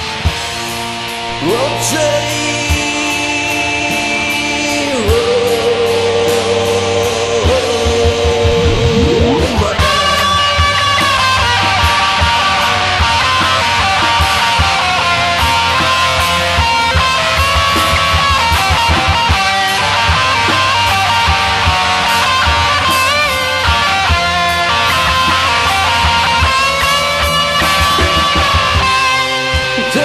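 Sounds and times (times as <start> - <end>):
driving drum beat: 0.0 - 30.0
rock guitars: 0.0 - 30.0
lead melody with pitch bends: 3.2 - 30.0.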